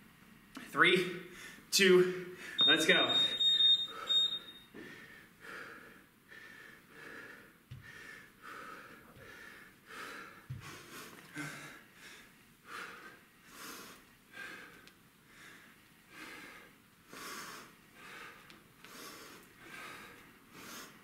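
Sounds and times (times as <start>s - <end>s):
man breathing hard: 3.9s - 21.0s.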